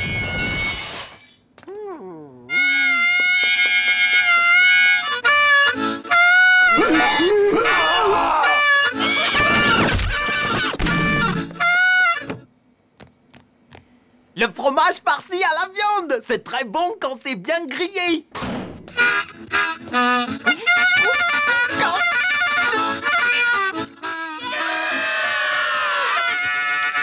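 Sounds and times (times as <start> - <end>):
shattering crash: 0.0 - 1.3
cartoon music with held notes: 2.5 - 12.4, 19.0 - 24.7
knocks and crashes: 9.3 - 11.6.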